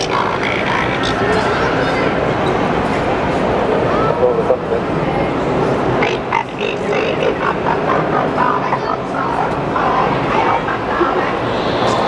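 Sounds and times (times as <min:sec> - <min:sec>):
crowd hubbub in echoing hall: 0:00.0 - 0:12.0
indistinct voices: 0:00.0 - 0:12.0.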